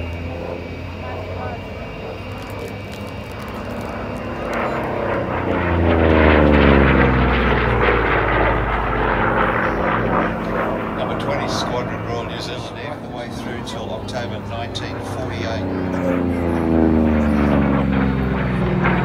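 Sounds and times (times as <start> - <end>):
propeller plane flying past: 0.0 - 19.0.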